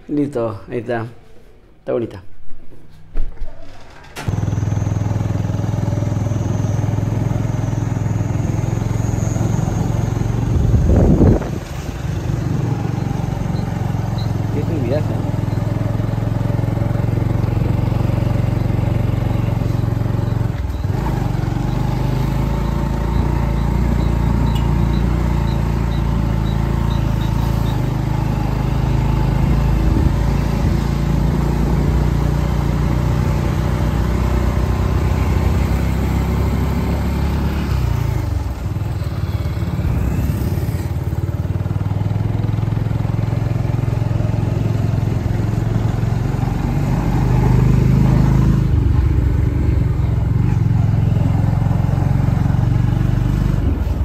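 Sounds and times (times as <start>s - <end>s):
road and wind noise: 4.1s - 54.0s
motorcycle engine running: 4.2s - 54.0s.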